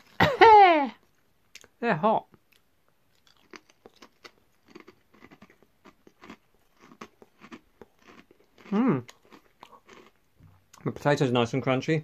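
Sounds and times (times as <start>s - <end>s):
person chewing crisps: 2.4s - 10.9s.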